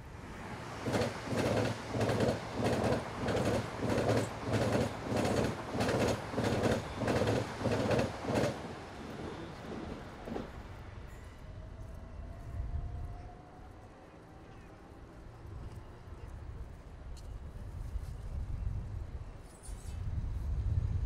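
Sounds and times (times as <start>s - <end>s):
train wheels clattering: 0.8s - 10.6s.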